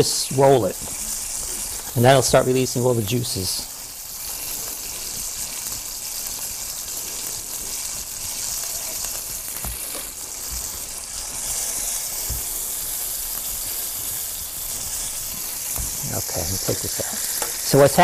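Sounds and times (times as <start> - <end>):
chicken sizzling in a skillet: 0.0 - 18.0.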